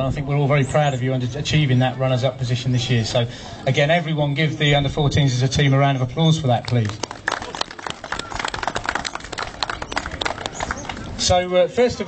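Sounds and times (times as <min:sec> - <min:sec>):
audience applauding: 0:06.6 - 0:11.2.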